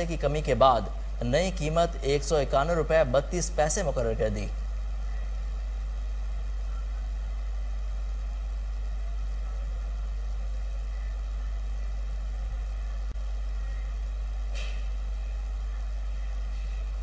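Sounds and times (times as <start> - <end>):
steady low hum: 0.0 - 17.0.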